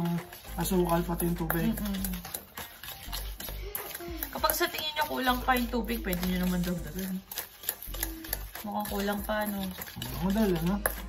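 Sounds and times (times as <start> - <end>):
metal spoon stirring in steel bowl: 0.0 - 11.0
spoon clinking and scraping bowl: 0.0 - 11.0.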